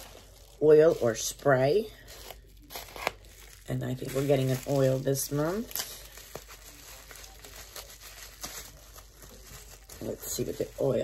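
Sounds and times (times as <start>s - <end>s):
bubble wrap crinkling: 0.0s - 11.0s.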